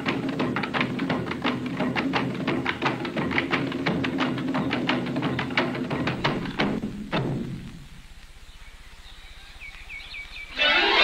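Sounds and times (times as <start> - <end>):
hula percussion stroke: 0.0 - 11.0.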